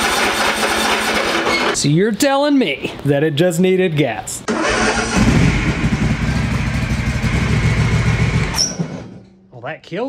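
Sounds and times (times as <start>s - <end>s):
riding lawn mower engine running: 0.0s - 1.6s, 4.5s - 9.2s.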